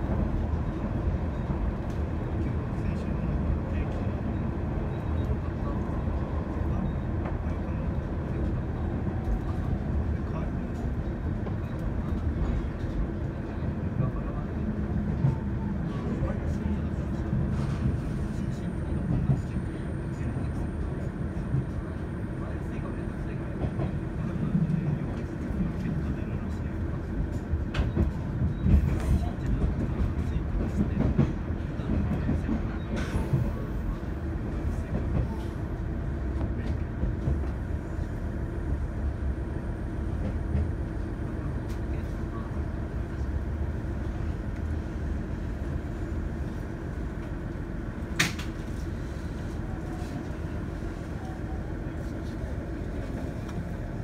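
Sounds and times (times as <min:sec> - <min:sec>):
railcar engine and wheel rumble: 0:00.0 - 0:54.0.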